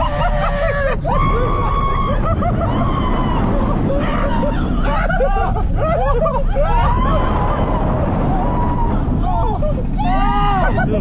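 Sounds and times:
low rumble of moving ride: 0.0 - 11.0
riders screaming and shouting: 0.0 - 11.0.

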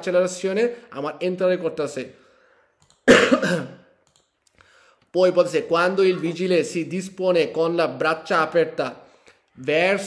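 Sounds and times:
man coughing: 3.0 - 3.9.

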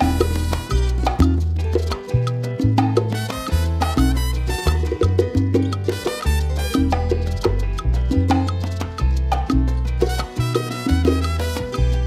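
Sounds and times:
backing band: 0.0 - 1.6, 3.1 - 7.5
bongo played by hand: 0.0 - 12.0.

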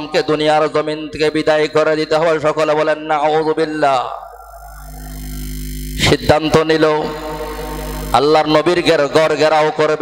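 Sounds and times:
man's amplified voice: 0.0 - 4.5, 6.0 - 10.0
electrical hum from sound system: 0.0 - 10.0.

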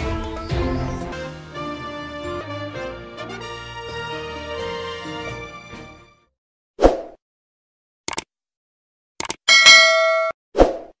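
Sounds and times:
quick clicks: 8.1 - 8.3, 9.2 - 9.4
notification bell ding: 9.5 - 10.4.

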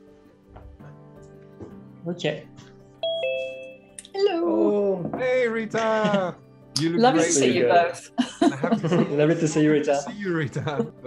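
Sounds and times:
two-note electronic chime: 3.0 - 4.0
person speaking: 4.0 - 7.9.

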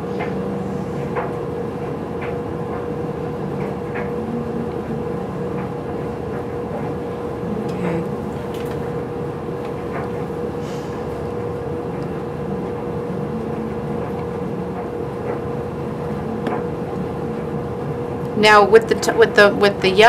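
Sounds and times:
mechanical hum with steady tone: 0.0 - 20.0.

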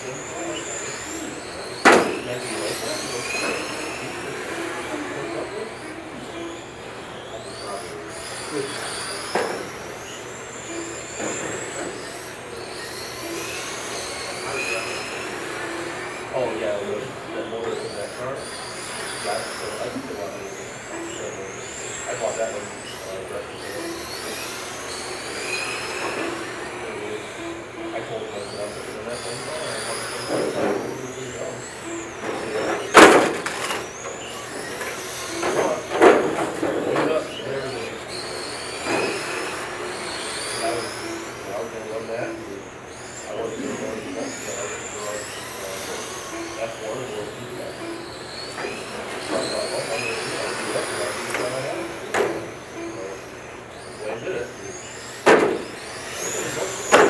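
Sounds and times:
electric toy car motors whining: 0.0 - 57.0.

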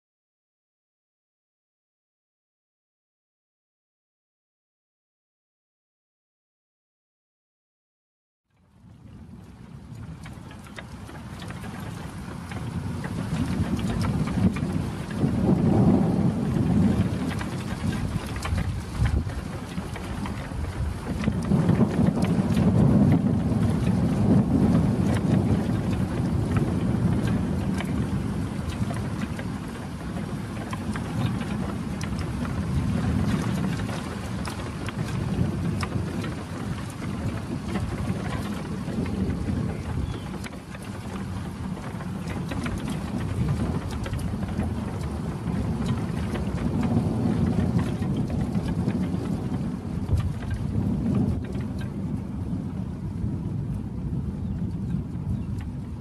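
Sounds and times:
steady rain: 8.6 - 56.0
thunder rumbling: 8.8 - 56.0.

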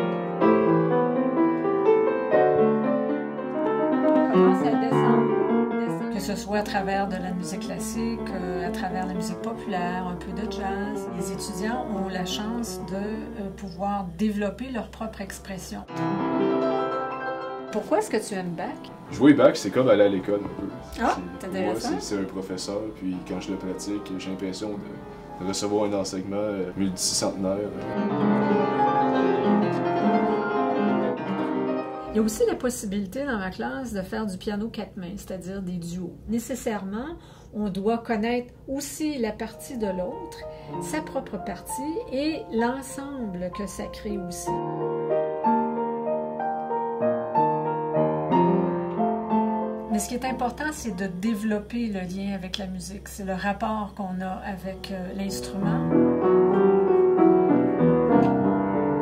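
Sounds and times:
classical piano piece: 0.0 - 32.9, 39.1 - 52.2, 54.4 - 59.0.

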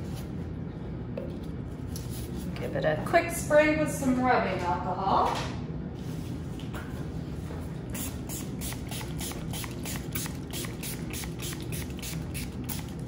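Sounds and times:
spray bottle spritzes: 8.0 - 13.0.

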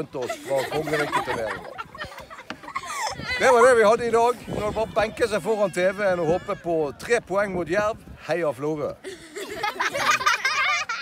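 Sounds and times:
girls laughing and giggling: 0.0 - 3.7, 9.0 - 11.0.

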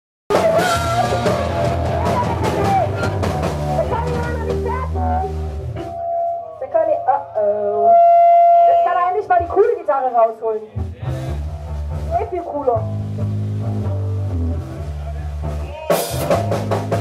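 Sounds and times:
punk band playing live: 0.3 - 6.4, 10.8 - 17.0.

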